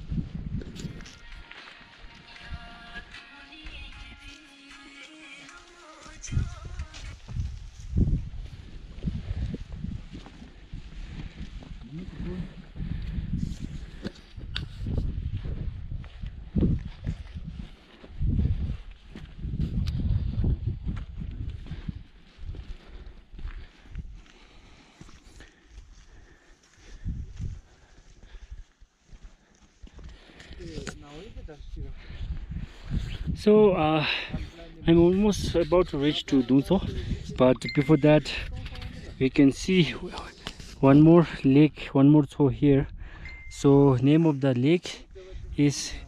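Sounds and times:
wind buffeting microphone: 0:00.0 - 0:01.1, 0:06.2 - 0:24.2, 0:26.9 - 0:28.7, 0:30.0 - 0:39.4
footsteps on dirt and stone: 0:00.0 - 0:32.8, 0:34.2 - 0:41.1.

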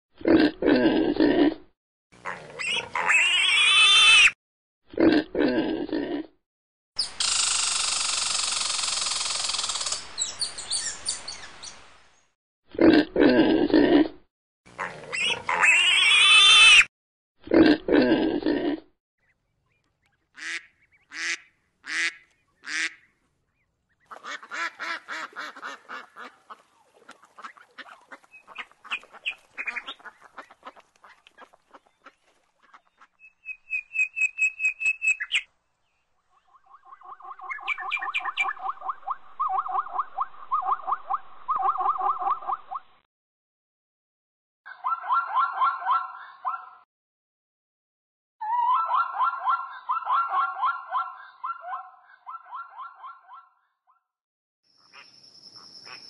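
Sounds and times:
pigs grunting and squealing: 0:00.2 - 0:06.4, 0:12.7 - 0:14.2, 0:14.8 - 0:18.9
duck quacking: 0:20.4 - 0:23.1, 0:24.1 - 0:33.2.

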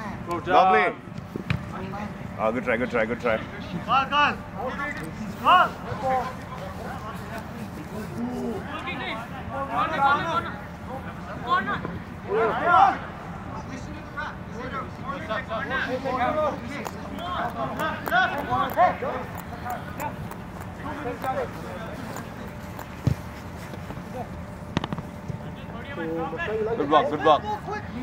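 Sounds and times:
men calling and talking: 0:00.0 - 0:28.0.

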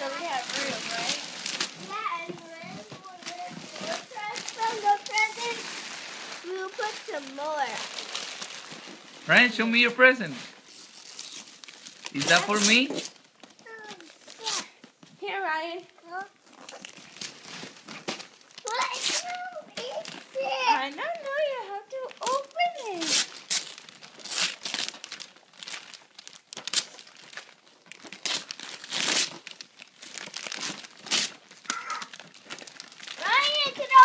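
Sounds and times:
wrapping paper tearing and crumpling: 0:00.0 - 0:34.0
child's high voice: 0:01.8 - 0:05.7, 0:06.4 - 0:07.9, 0:13.6 - 0:15.4, 0:16.0 - 0:16.4, 0:18.6 - 0:23.2, 0:31.6 - 0:32.2, 0:33.2 - 0:34.0.

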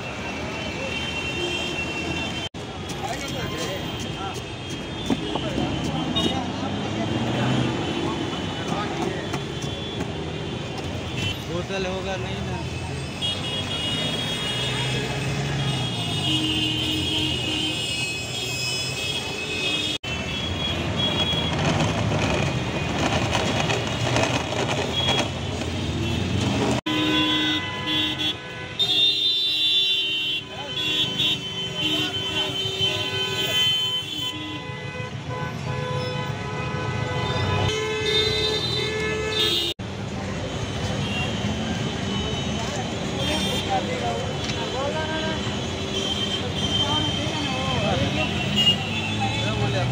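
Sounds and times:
vehicle horns tooting: 0:00.0 - 0:11.7, 0:13.0 - 0:23.1, 0:23.8 - 0:39.8, 0:40.6 - 0:49.9
street traffic: 0:00.0 - 0:49.9
passing scooters and cars: 0:02.5 - 0:17.5, 0:20.2 - 0:28.3, 0:30.5 - 0:49.9
people talking: 0:02.9 - 0:04.5.

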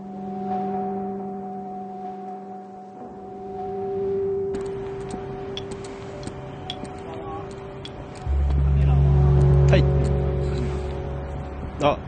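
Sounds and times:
sustained low musical tone: 0:00.0 - 0:12.0
street traffic: 0:04.6 - 0:12.0.

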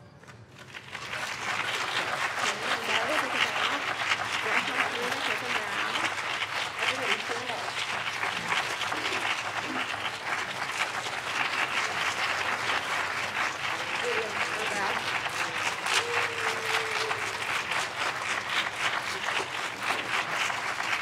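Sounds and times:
audience applauding: 0:00.5 - 0:21.0.

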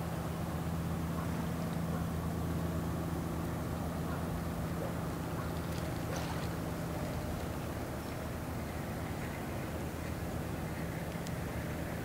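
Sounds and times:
ship engine drone: 0:00.0 - 0:12.0.

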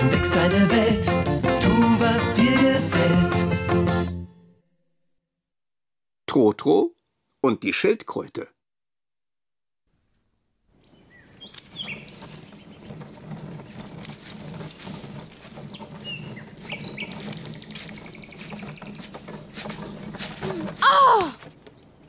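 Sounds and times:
birds chirping: 0:10.7 - 0:22.0.

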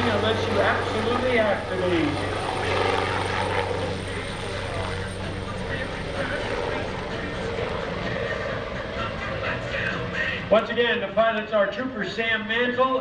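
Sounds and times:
helicopter rotor hum: 0:00.0 - 0:11.8.

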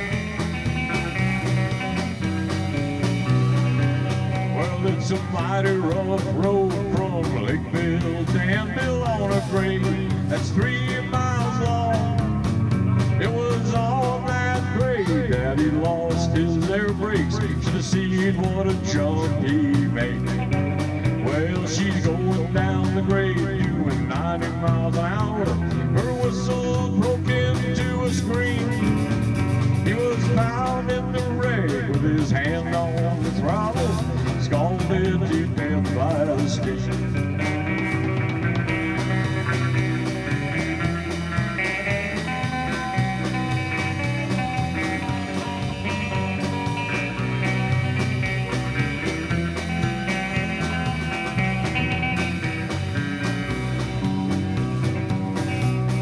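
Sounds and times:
bass: 0:00.0 - 0:56.0
electric guitar lead: 0:00.0 - 0:56.0
live country-rock band: 0:00.0 - 0:56.0
steady drum beat: 0:00.0 - 0:56.0.

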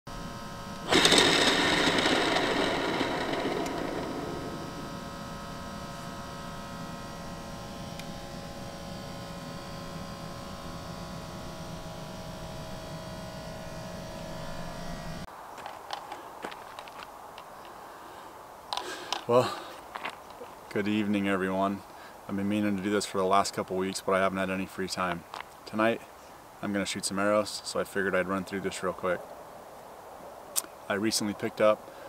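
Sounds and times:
drone of held tones: 0:00.1 - 0:15.3.

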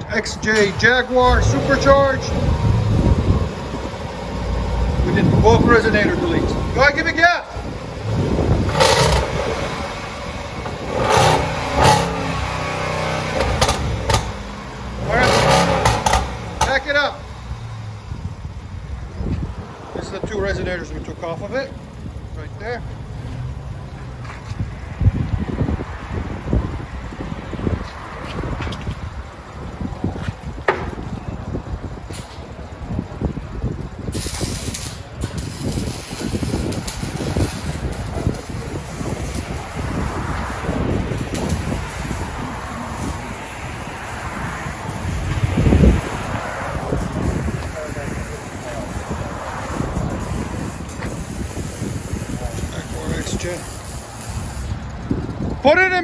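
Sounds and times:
car engine running at low revs: 0:00.5 - 0:55.6.

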